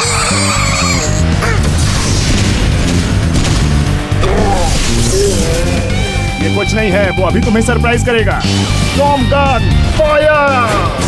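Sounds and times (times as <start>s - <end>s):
action background music: 0.0s - 11.0s
crash: 1.6s - 6.4s
energy blast firing: 1.6s - 6.5s.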